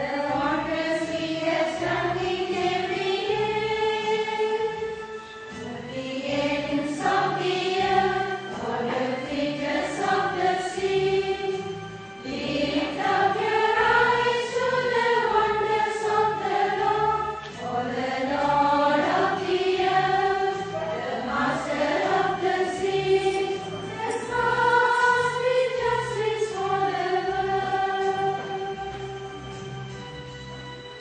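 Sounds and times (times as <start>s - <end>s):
choir singing a hymn: 0.0s - 29.3s
low instrumental accompaniment: 0.0s - 31.0s.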